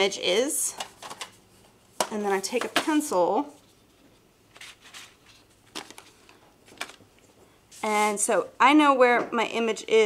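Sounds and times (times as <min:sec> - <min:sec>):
pencils clicking and rustling: 0:00.7 - 0:01.4, 0:04.6 - 0:07.0.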